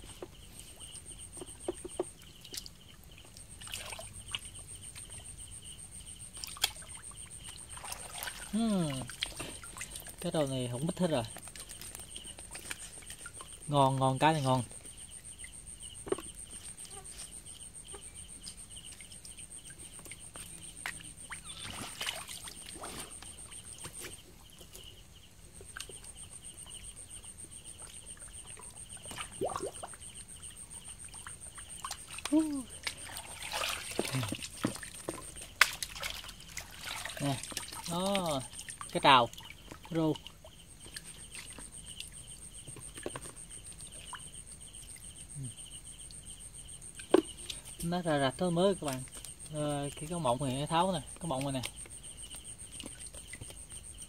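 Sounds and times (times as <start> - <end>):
night insects chirring: 0.0 - 54.0
water splashing and sloshing: 0.0 - 54.0.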